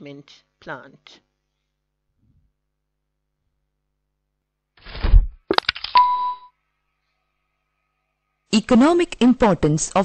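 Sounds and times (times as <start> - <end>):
low thud: 5.0 - 5.4
ringing ding: 6.0 - 6.5.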